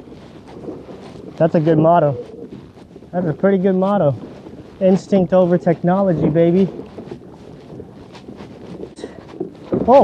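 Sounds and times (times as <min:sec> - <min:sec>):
waves lapping against hull: 0:00.0 - 0:10.0
wind buffeting microphone: 0:00.0 - 0:10.0.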